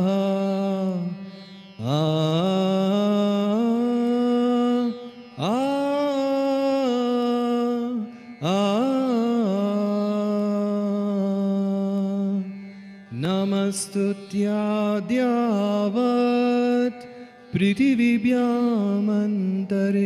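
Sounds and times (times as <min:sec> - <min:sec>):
devotional chant with long notes: 0:00.0 - 0:20.0.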